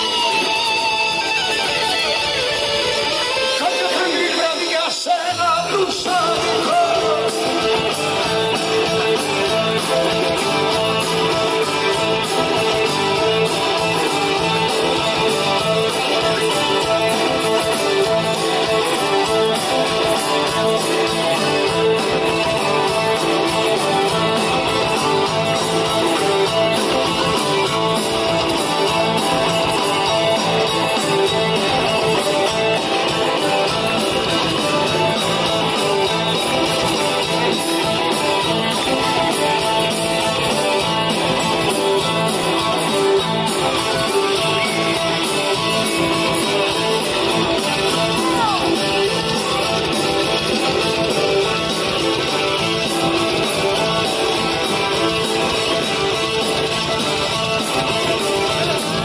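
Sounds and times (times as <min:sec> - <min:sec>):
guitars strumming: 0:00.0 - 0:59.0
rock band playing: 0:00.0 - 0:59.0.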